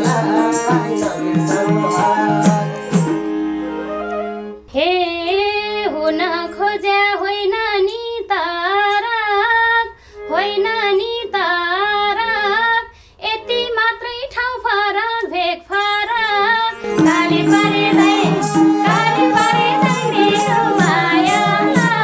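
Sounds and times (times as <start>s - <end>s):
harmonium notes: 0.0s - 7.1s, 16.0s - 22.0s
woman singing folk song: 4.7s - 22.0s.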